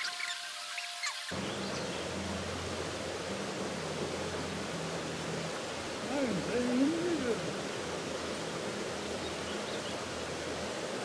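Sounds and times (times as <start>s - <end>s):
river running over rocks: 1.3s - 11.0s.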